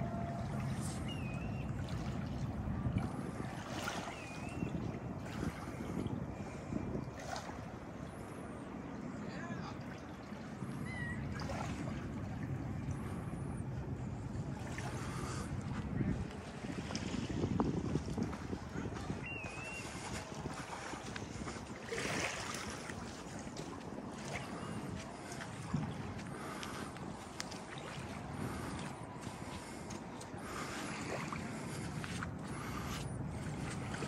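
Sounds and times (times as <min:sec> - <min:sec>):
wind on microphone: 0:00.0 - 0:09.0, 0:10.4 - 0:34.0
whistled bird call: 0:00.7 - 0:01.8, 0:04.0 - 0:04.8, 0:10.8 - 0:11.3, 0:19.2 - 0:20.0.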